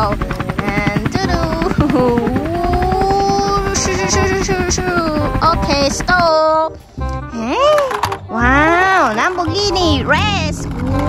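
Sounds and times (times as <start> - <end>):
helicopter rotor chopping: 0.0 - 11.0.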